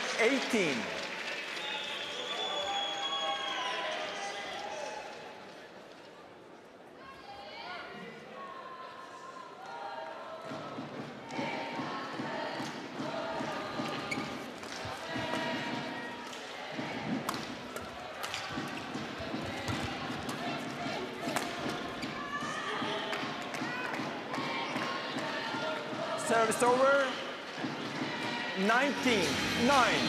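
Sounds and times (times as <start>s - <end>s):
murmur of crowd voices: 4.1s - 30.0s.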